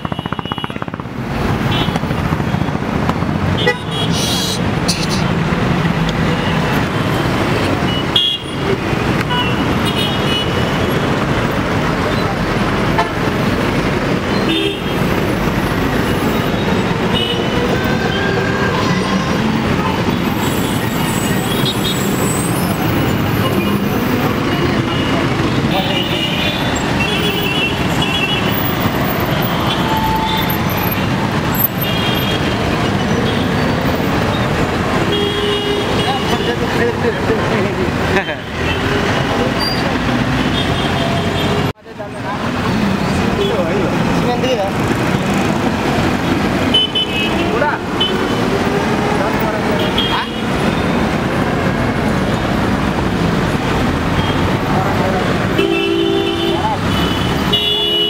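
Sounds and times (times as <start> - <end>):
traffic passing: 0.0 - 58.0.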